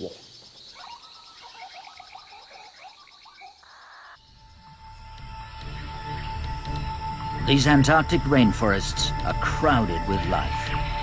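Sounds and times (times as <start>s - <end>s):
insect trill: 0.0s - 11.0s
short chirping calls: 0.1s - 4.2s.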